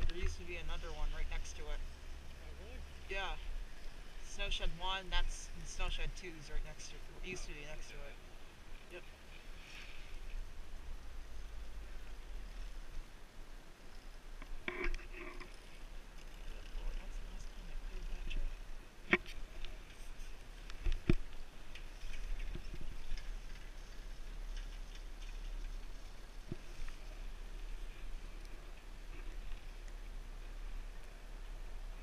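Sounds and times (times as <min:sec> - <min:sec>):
wind rumble on microphone: 0:05.7 - 0:32.0.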